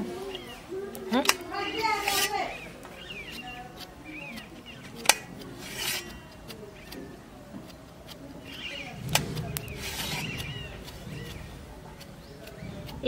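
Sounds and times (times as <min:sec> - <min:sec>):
knife slicing mushrooms: 0:02.9 - 0:13.0.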